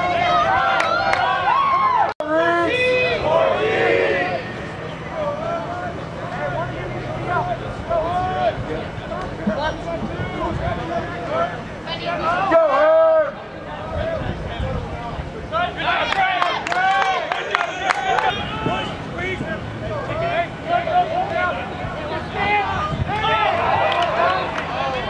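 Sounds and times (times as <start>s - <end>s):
people shouting: 0.0s - 13.4s, 15.6s - 25.0s
crowd cheering: 0.0s - 25.0s.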